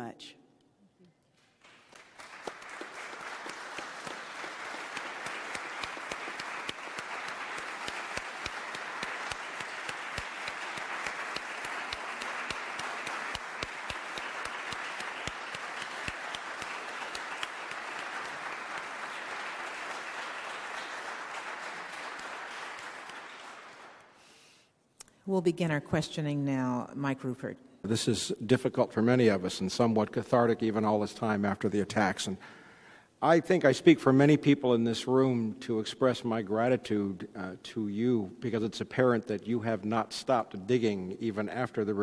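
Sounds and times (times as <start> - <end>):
audience applauding: 1.4 - 24.3.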